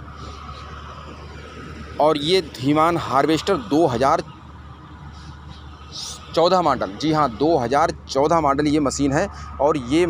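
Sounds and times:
engine low hum: 0.0s - 10.0s.

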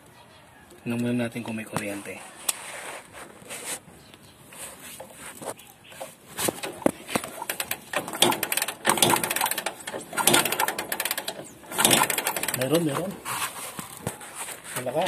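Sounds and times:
engine mechanical rattle: 6.0s - 13.3s.

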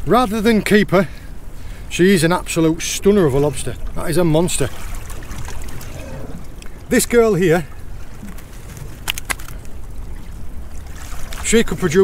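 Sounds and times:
low wind rumble: 0.0s - 12.0s
water lapping against boat hull: 0.0s - 12.0s.

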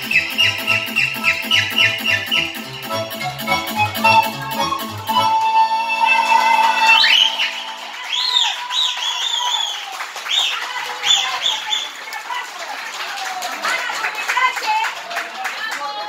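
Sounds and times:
pan flute dance music with band: 0.0s - 10.5s
short high calls: 0.0s - 11.8s.

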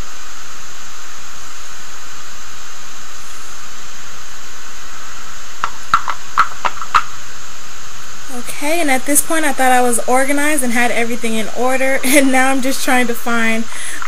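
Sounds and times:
loud steady hiss: 0.0s - 14.0s.

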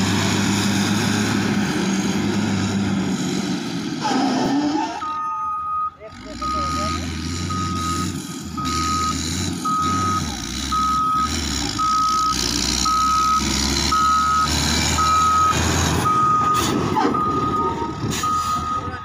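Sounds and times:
diesel engine running: 0.0s - 19.0s
reversing alarm beeping: 4.8s - 19.0s.

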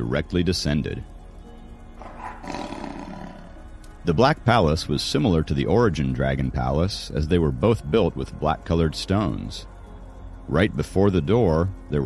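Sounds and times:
soft background music: 0.0s - 12.0s
animal roar: 2.0s - 3.7s.

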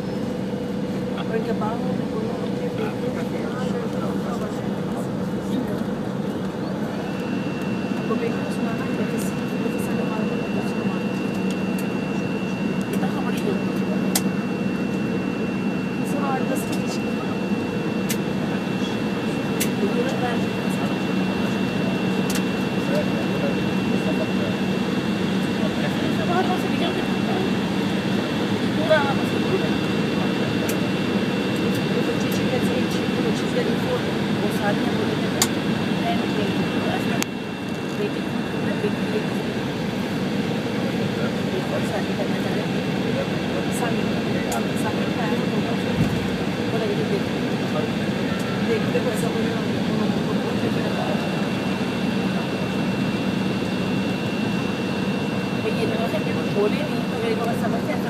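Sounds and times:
jet engines rumbling: 0.0s - 58.0s.

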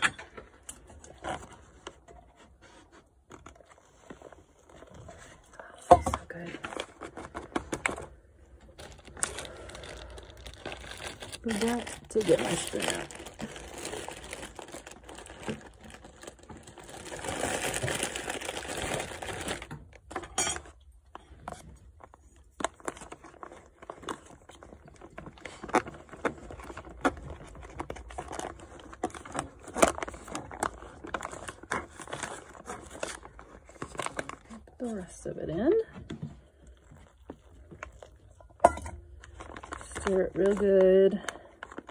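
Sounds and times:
foil pouch crinkling: 6.3s - 20.2s, 21.4s - 35.2s, 36.6s - 41.9s.

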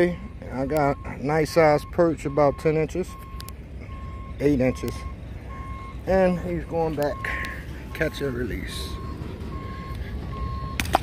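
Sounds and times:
reversing beeper: 0.0s - 11.0s.

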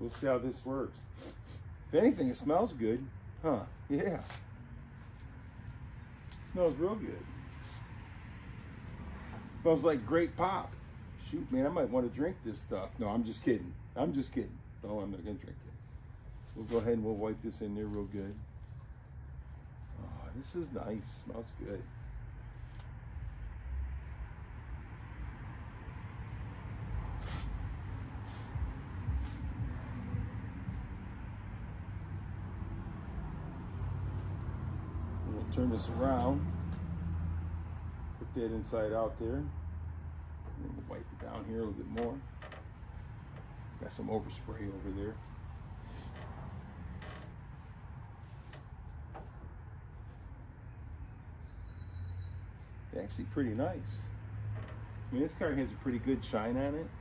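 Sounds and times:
steady low hum: 0.0s - 36.8s.

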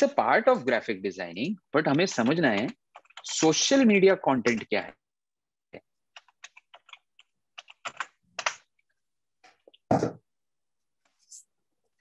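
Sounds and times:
typing on keyboard: 1.8s - 3.8s, 6.1s - 8.6s.

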